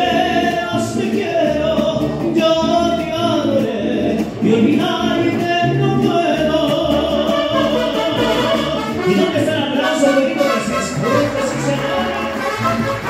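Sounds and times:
mariachi band playing: 0:00.0 - 0:13.0.

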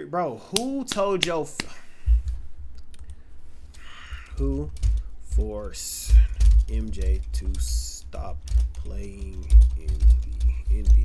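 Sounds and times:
loud low thump: 0:02.1 - 0:02.4.

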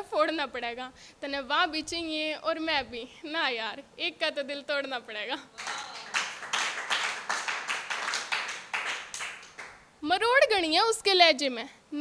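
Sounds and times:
audience clapping in rhythm: 0:05.6 - 0:09.9.

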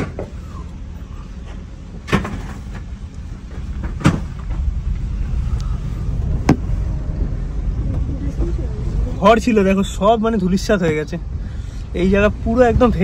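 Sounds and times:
car engine and tyre rumble: 0:00.0 - 0:13.0.

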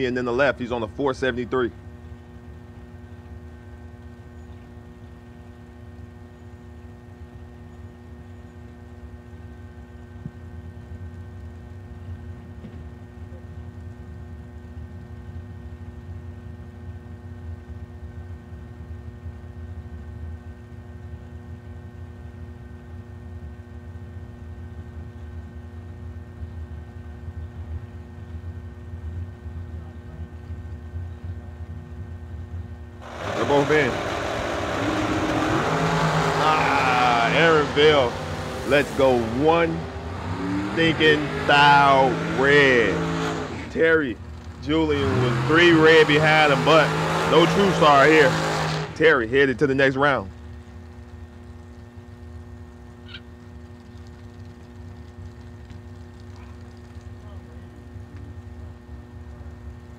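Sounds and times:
dragster engines: 0:00.0 - 0:59.9.

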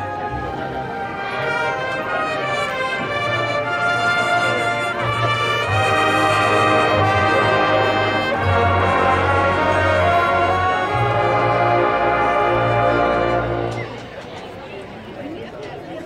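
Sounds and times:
brass band playing loud chords: 0:00.0 - 0:14.0.

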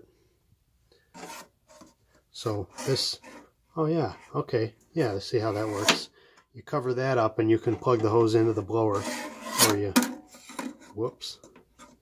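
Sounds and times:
metal being rubbed by hand: 0:08.8 - 0:09.8.

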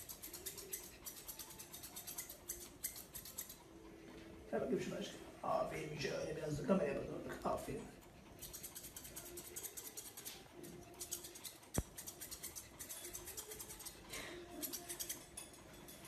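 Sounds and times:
scissors snipping: 0:00.0 - 0:03.6, 0:08.4 - 0:14.0, 0:14.6 - 0:15.4
sharp scissors click: 0:00.0 - 0:03.6, 0:08.4 - 0:14.0, 0:14.6 - 0:15.6.

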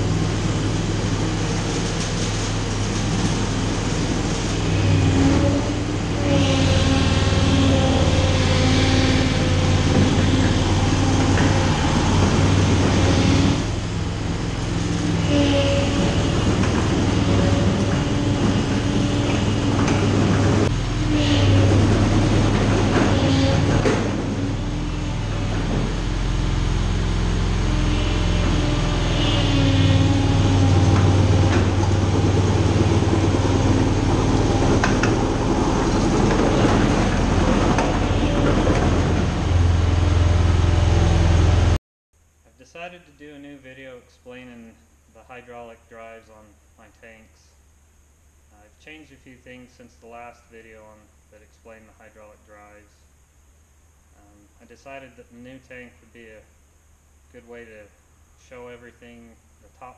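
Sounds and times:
tank engine running under load: 0:00.0 - 0:41.8.

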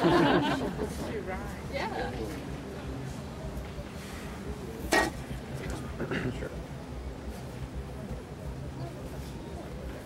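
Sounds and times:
low crowd murmur: 0:00.0 - 0:10.0.

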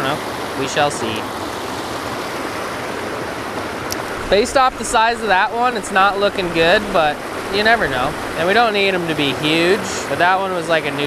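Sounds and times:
water rushing over rocks: 0:00.0 - 0:11.0.

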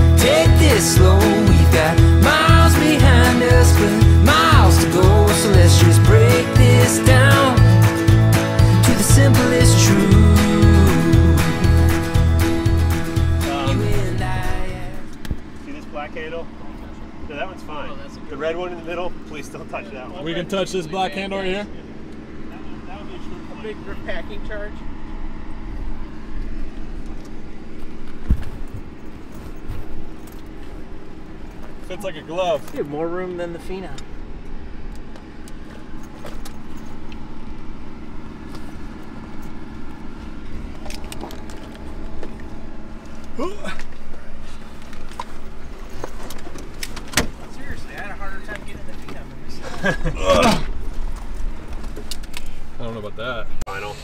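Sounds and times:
steady low rumble: 0:00.0 - 0:19.5, 0:21.4 - 0:52.8
steady low hum: 0:00.0 - 0:54.0
background voices talking: 0:13.2 - 0:24.9.

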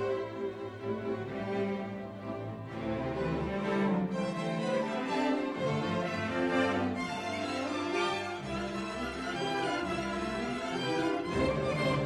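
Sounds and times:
bowed violins: 0:00.0 - 0:12.0.

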